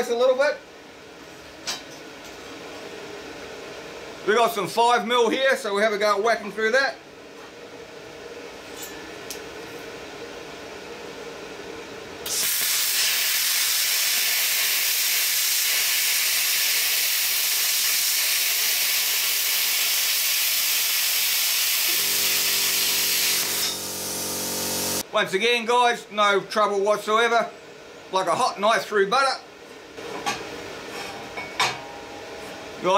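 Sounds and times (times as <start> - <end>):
low machine hum: 0.0 - 12.3, 21.9 - 32.9
plasma cutter arc hissing: 12.2 - 25.0.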